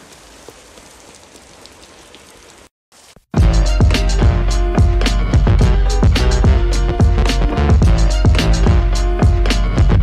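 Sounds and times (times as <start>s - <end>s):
steady rain falling: 0.0s - 3.2s.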